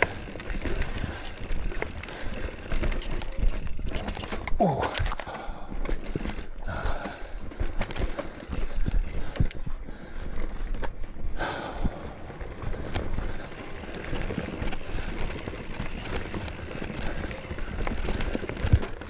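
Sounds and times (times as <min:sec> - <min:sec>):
bike knocking and rattling: 0:00.0 - 0:19.0
bike tyres rolling over dirt: 0:00.0 - 0:19.0.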